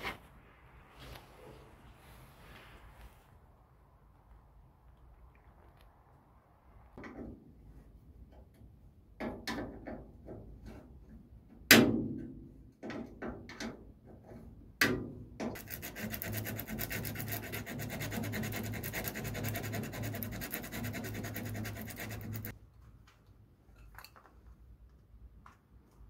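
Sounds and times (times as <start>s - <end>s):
rapid scraping on hard surface: 15.6s - 22.6s.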